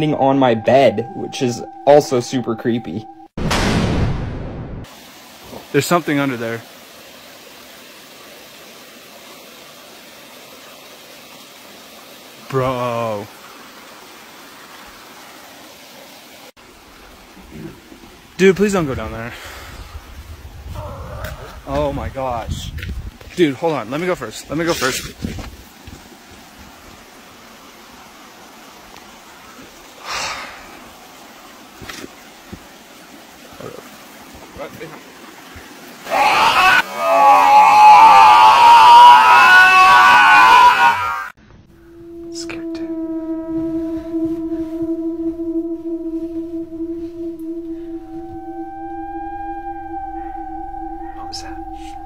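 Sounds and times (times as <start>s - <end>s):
eerie drone of held tones: 0.0s - 3.4s, 41.7s - 52.0s
loud screaming: 36.0s - 41.4s, 42.2s - 52.0s.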